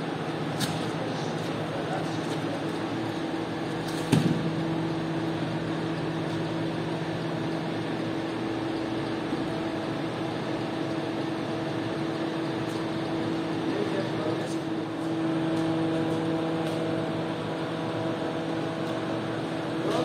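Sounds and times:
machinery humming: 0.0 - 20.0.

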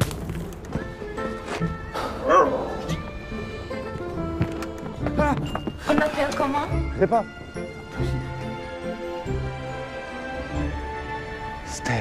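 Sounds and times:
background music with held notes: 0.2 - 12.0
dog barking: 2.2 - 2.8.

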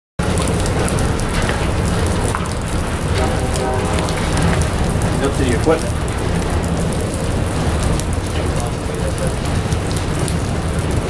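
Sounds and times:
train wheels rumbling on rail: 0.2 - 11.0.

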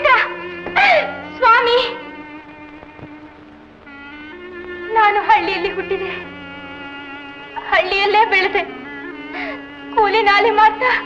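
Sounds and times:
film music held notes: 0.0 - 11.0.

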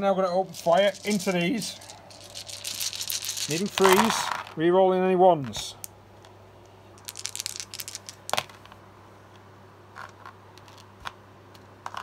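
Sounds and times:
dice clicking together: 0.8 - 4.6, 7.0 - 8.8, 10.0 - 12.0.

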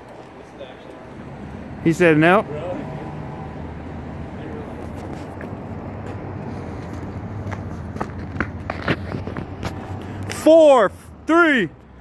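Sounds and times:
steady low street hum: 0.0 - 12.0.

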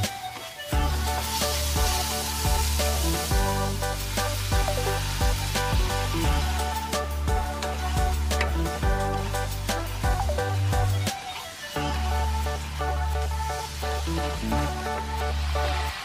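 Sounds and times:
electronic music with steady beat: 0.0 - 16.0
meat sizzling in a wok: 0.0 - 16.0
water hissing in hot pan: 0.0 - 16.0.

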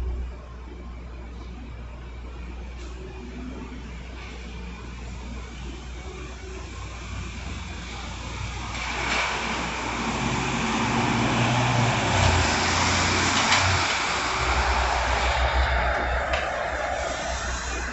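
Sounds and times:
van driving past: 9.8 - 17.9.

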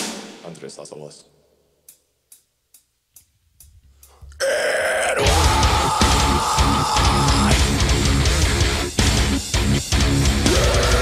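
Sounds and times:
count-in ticks: 1.8 - 4.4
heavy metal band playing: 5.2 - 11.0.

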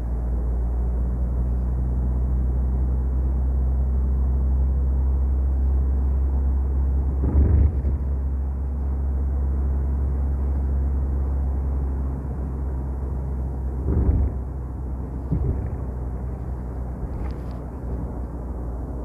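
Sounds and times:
road and engine noise in car: 0.0 - 19.0.

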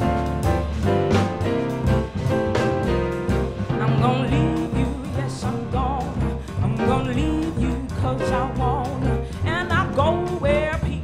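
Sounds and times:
jazz combo playing: 0.0 - 11.0
woman singing: 3.7 - 11.0.

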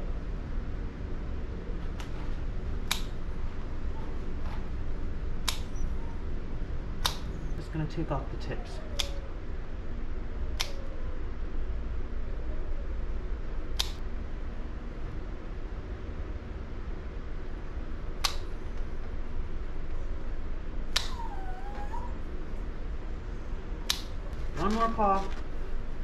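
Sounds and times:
dog whimpering: 5.7 - 6.3, 7.3 - 9.4, 21.0 - 22.5
nail clippers clicking: 20.9 - 21.2.

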